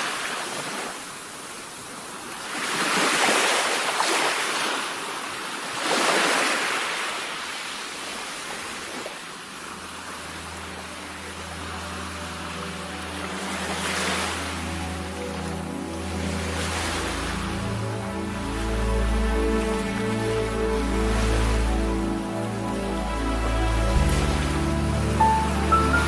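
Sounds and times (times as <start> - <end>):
surf washing onto shore: 0.0 - 26.0
low held musical notes: 9.7 - 26.0.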